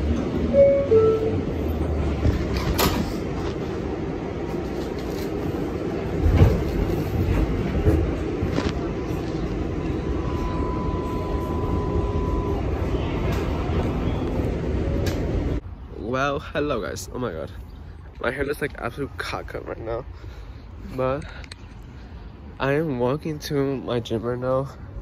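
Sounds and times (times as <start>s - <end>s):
train rumbling and rattling: 0.0s - 22.0s.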